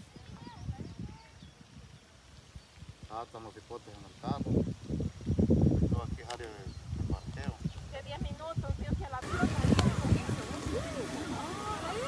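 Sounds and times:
faint distant voices: 9.2 - 12.0.

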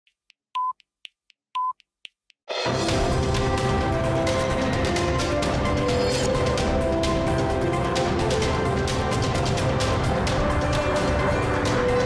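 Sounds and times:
short steady beep: 0.6 - 0.8, 1.6 - 1.8.

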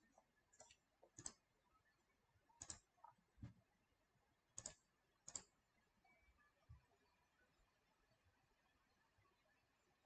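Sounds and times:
sharp computer clicks: 0.5 - 1.4, 2.6 - 2.9, 4.6 - 5.6.

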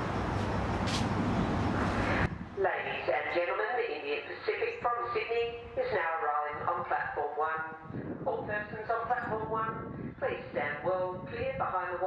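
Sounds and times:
outdoor noise: 0.0 - 12.0
public address announcement: 1.8 - 12.0.

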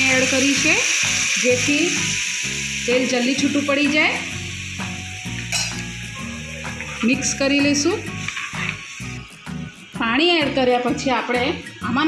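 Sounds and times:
sauce sizzling in a pan: 0.0 - 12.0.

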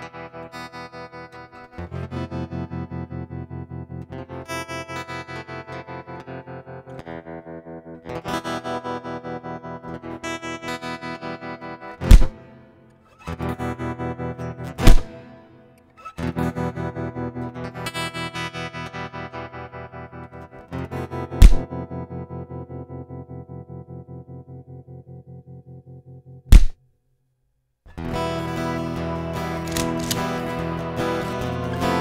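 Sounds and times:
distorted electric guitar chugging: 12.0 - 12.4, 13.2 - 15.5, 21.1 - 22.4, 27.9 - 32.0
loud sharp hits: 12.0 - 12.4, 14.8 - 15.2, 21.4 - 21.7, 26.5 - 26.8.

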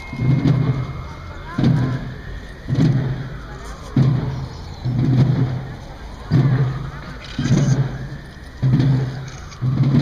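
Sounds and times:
procession drums beating a march: 0.0 - 10.0.

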